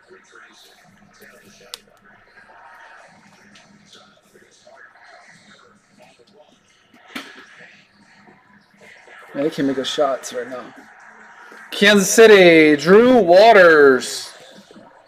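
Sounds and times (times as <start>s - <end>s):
faint background voices: 0.0s - 11.9s.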